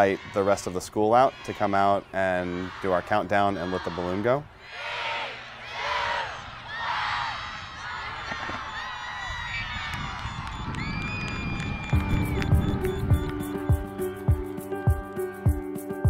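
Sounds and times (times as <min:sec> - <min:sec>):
background music with steady beat: 0:12.0 - 0:16.0.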